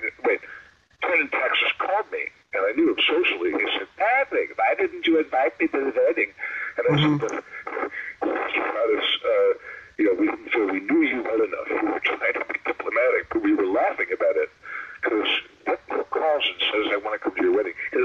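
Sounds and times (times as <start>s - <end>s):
man talking over a call line: 0.0s - 18.0s.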